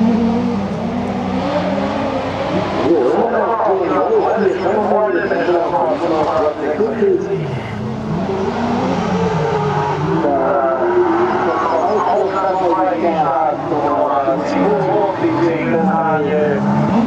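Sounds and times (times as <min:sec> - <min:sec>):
race car engines revving: 0:00.0 - 0:17.0.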